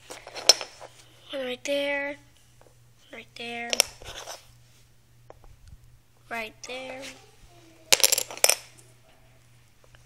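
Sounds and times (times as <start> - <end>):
dominoes clicking: 7.9 - 8.6.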